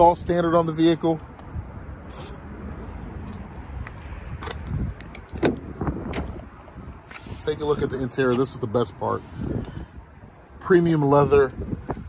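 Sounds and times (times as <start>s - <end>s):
wind on microphone: 1.4s - 12.0s
car door latch clicks: 5.2s - 6.4s
car door clunk: 5.3s - 6.4s.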